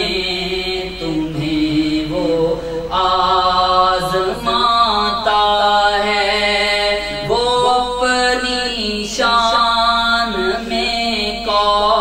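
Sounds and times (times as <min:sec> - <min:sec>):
man chanting devotional verse: 0:00.0 - 0:12.0.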